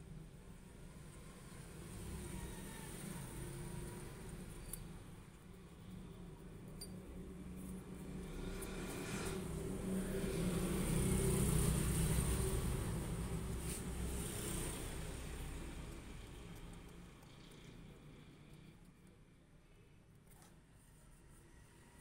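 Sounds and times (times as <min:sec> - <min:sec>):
vehicle engine rumble passing: 0:00.1 - 0:18.8.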